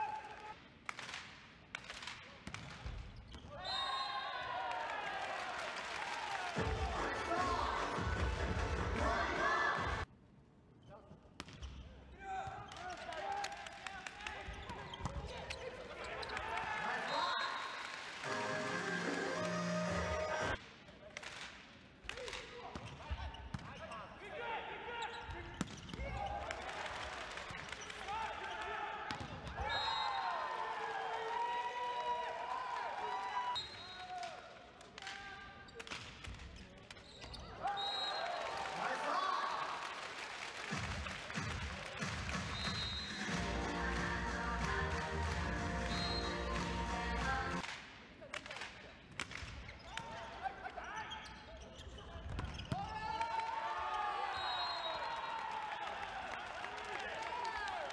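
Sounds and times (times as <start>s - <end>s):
arena music: 6.6s - 10.0s, 18.2s - 20.6s, 42.0s - 47.6s
short high whistle blasts: 42.5s - 43.3s, 45.9s - 46.4s.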